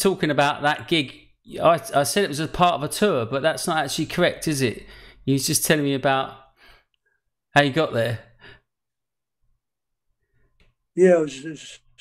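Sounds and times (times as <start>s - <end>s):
man speaking: 0.0s - 6.4s, 7.6s - 8.3s, 11.0s - 12.0s.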